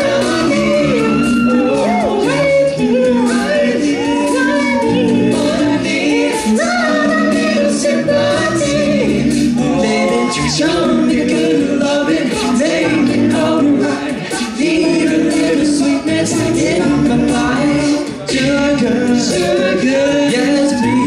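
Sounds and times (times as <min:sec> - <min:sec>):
male a cappella singing: 0:00.0 - 0:21.0
vocal percussion beat: 0:00.0 - 0:21.0.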